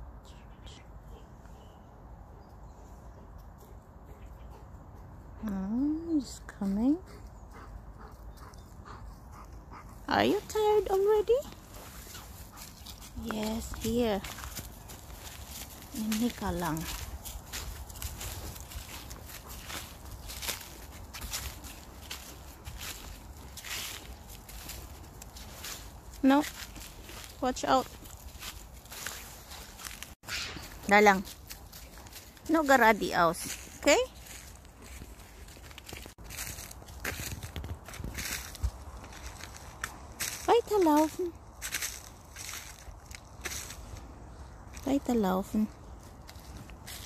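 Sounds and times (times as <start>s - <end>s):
footsteps crunching on frozen ground: 10.3s - 47.0s
person speaking: 13.1s - 14.4s, 15.8s - 17.1s, 32.4s - 34.2s, 40.4s - 41.4s.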